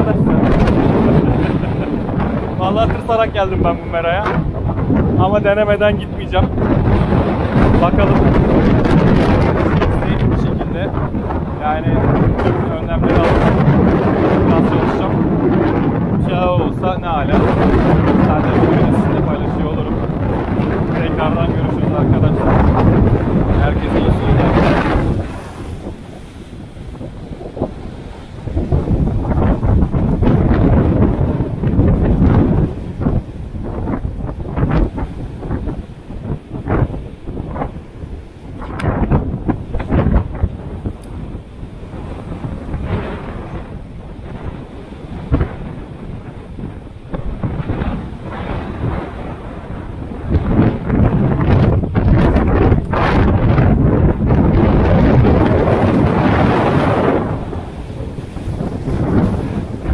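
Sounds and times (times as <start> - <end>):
heavy surf breaking on rocks: 0.0 - 59.9
wind buffeting microphone: 0.0 - 59.9.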